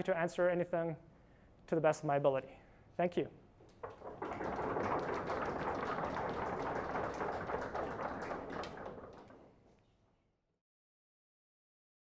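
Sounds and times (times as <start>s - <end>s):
audience applauding: 3.8s - 9.5s.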